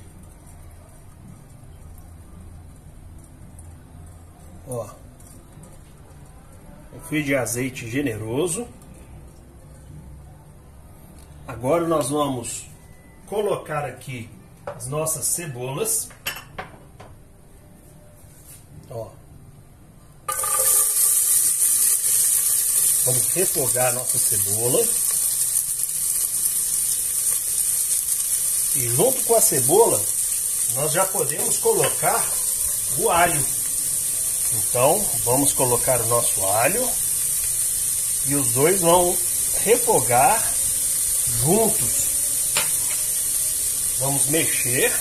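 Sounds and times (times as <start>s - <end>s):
onions sizzling in hot oil: 20.3s - 45.0s.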